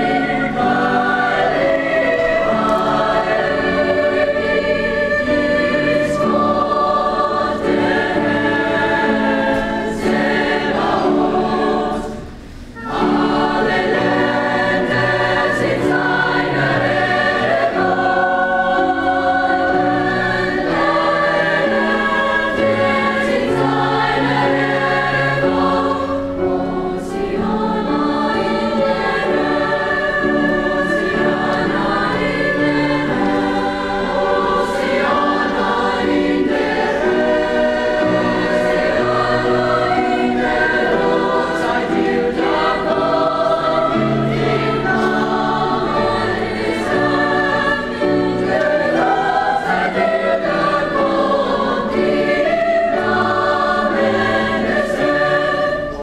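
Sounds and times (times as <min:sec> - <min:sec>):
choir singing in parts: 0:00.0 - 0:56.0.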